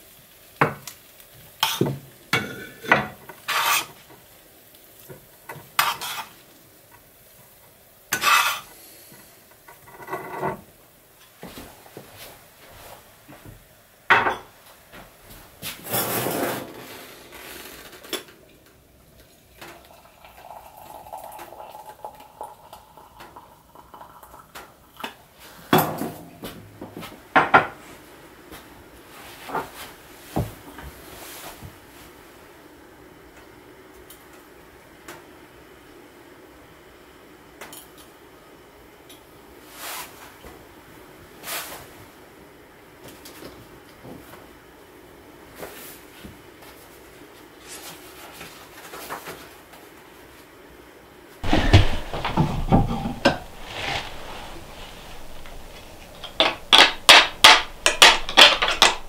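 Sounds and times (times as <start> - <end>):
dishes and utensils clinking: 1.6 - 4.0, 5.5 - 6.4, 8.1 - 8.7, 14.1 - 14.6, 51.4 - 59.0
dishes scraping: 1.6 - 4.0, 5.8 - 6.4, 8.1 - 8.8, 9.8 - 10.7, 15.8 - 17.4, 51.4 - 59.0.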